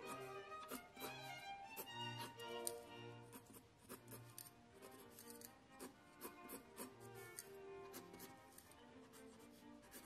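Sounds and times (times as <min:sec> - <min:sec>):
pencil scratching on paper: 0:00.0 - 0:10.0
quiet background music: 0:00.0 - 0:10.0.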